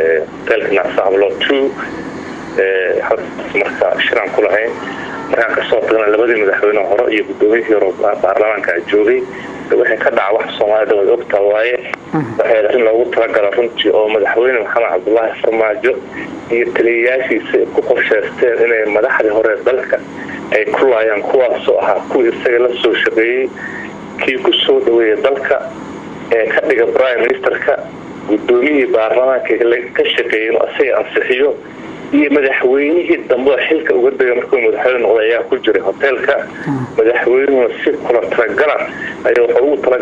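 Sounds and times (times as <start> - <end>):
man speaking: 0.0 - 1.9, 2.6 - 25.7, 26.3 - 31.6, 32.2 - 40.0.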